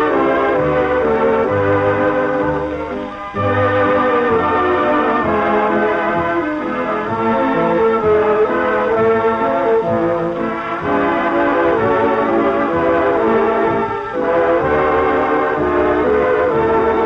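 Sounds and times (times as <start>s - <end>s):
brass melody: 0.0s - 17.0s
swing dance orchestra: 0.0s - 17.0s.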